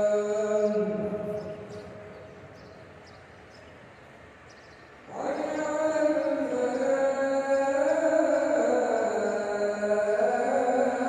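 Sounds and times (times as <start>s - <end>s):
chanting over loudspeakers: 0.0s - 2.9s, 5.0s - 11.0s.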